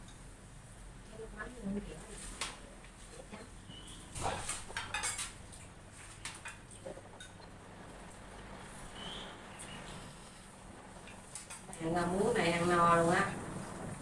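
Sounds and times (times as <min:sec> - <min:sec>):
chopsticks clinking on ceramic bowls: 0:04.5 - 0:05.3.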